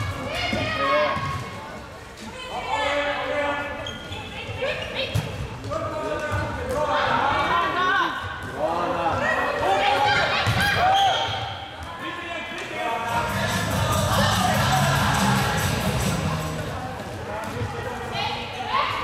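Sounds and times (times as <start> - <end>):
players calling and shouting: 0.0 - 19.0.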